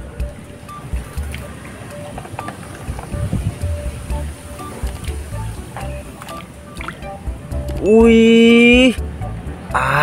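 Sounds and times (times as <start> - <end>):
light background music: 0.0 - 10.0.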